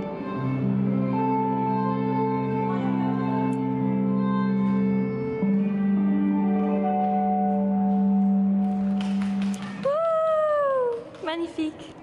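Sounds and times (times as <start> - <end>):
violin and guitar duo: 0.0 - 7.7.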